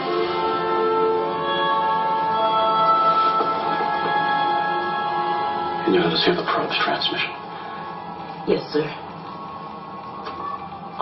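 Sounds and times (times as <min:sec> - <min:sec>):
electronic hum and hiss: 0:00.0 - 0:11.0
faint steady tones: 0:00.0 - 0:11.0.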